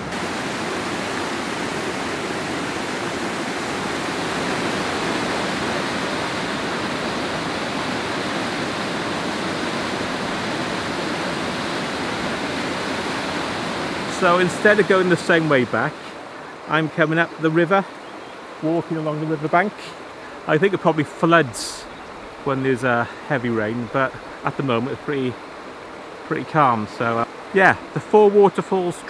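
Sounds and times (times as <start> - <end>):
waterfall rushing: 0.0 - 29.0.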